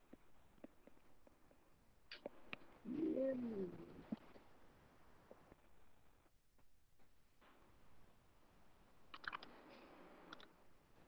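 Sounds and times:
pigeon cooing: 2.8s - 4.3s.

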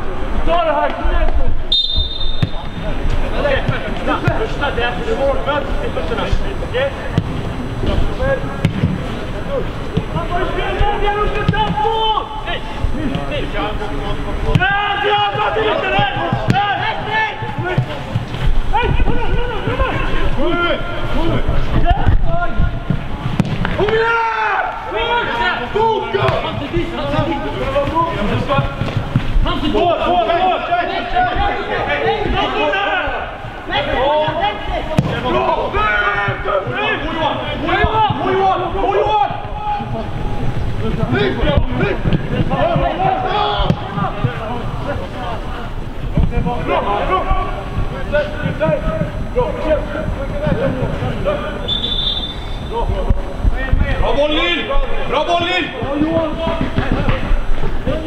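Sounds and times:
players shouting: 0.4s - 58.0s
ball being kicked: 2.0s - 2.8s.

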